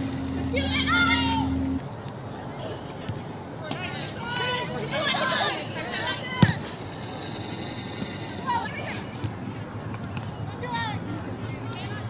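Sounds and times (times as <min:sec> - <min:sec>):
players shouting: 0:00.2 - 0:01.8.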